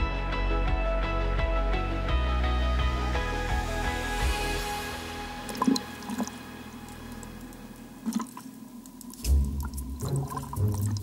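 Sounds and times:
background music: 0.0s - 11.0s
water drips and splashes: 5.5s - 11.0s.

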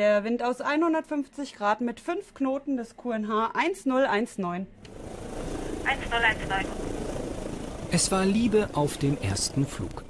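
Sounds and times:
helicopter drone in flight: 4.9s - 10.0s.

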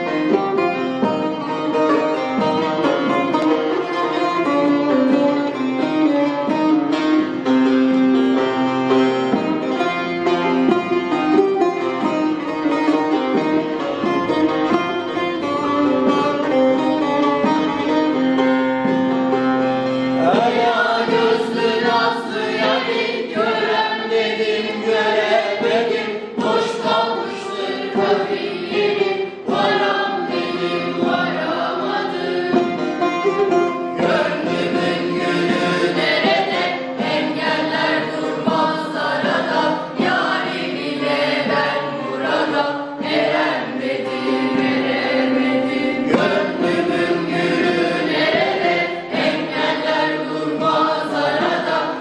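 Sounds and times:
plucked long-necked lute melody: 0.0s - 52.0s
group singing in unison: 20.1s - 33.0s, 33.9s - 52.0s.

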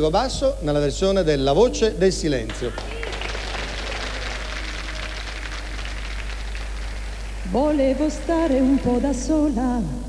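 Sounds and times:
audience applauding: 2.5s - 9.4s.

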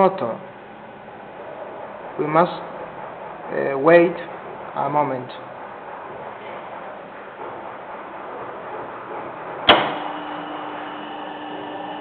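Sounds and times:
electric fan motor humming: 0.0s - 12.0s.

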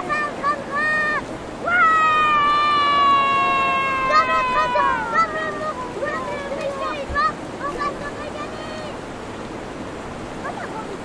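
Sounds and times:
child screaming: 0.9s - 6.5s.

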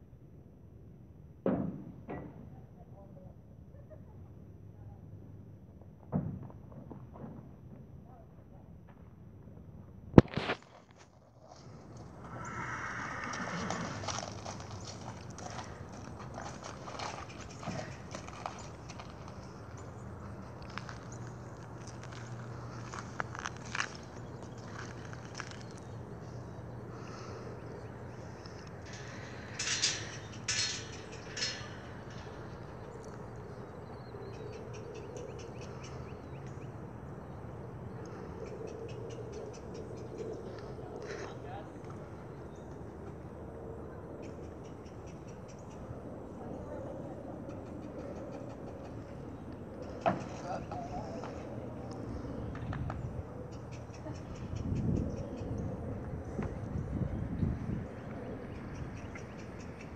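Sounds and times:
horse hooves on gravel: 10.2s - 26.2s.

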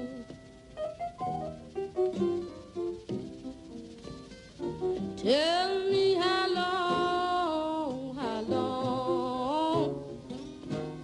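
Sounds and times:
woman singing blues: 5.2s - 10.3s.

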